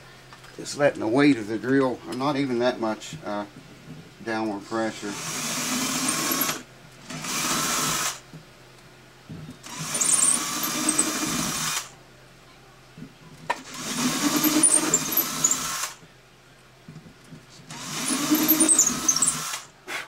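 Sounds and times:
cordless drill boring wood: 5.1 - 8.2, 9.6 - 11.9, 13.6 - 16.0, 17.7 - 19.7.

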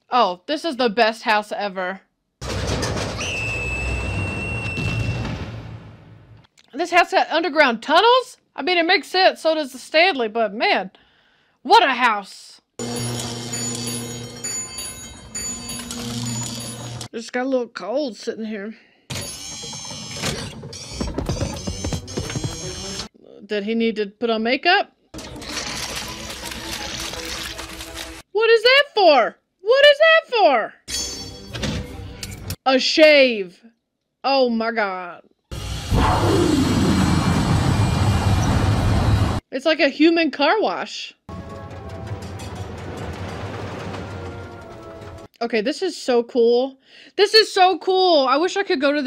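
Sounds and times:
electric bell ringing: 12.8 - 17.1.

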